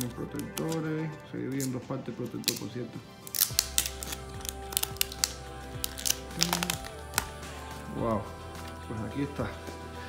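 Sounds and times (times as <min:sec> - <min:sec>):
plastic film crackling: 0:00.0 - 0:07.4
background music: 0:00.0 - 0:10.0.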